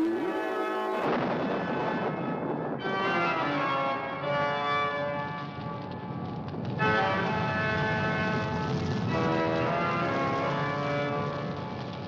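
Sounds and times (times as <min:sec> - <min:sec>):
low sustained drone: 0:00.0 - 0:03.5.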